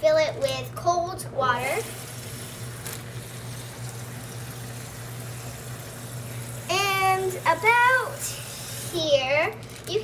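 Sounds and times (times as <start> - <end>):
faucet water filling bag: 1.5 - 10.0.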